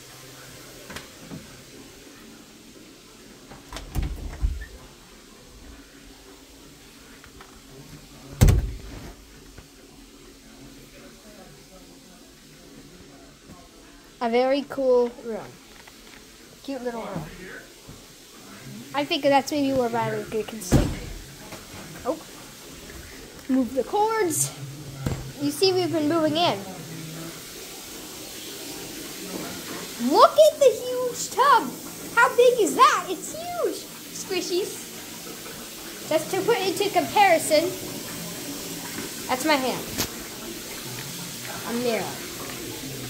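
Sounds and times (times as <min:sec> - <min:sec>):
water churning in whirlpool tub: 0:16.4 - 0:43.0.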